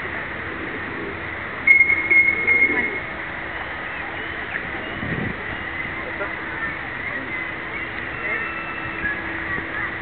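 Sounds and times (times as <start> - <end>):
high whistle blast: 1.7 - 3.1.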